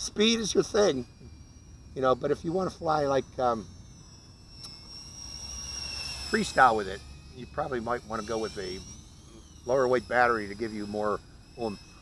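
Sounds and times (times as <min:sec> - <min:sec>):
drone motors whining: 0:00.0 - 0:12.0.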